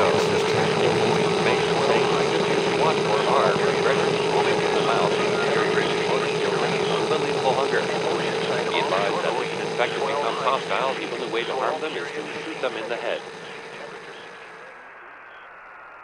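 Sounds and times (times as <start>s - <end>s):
garbled voice-like sounds: 0.0s - 14.6s
wavering hum: 0.0s - 16.0s.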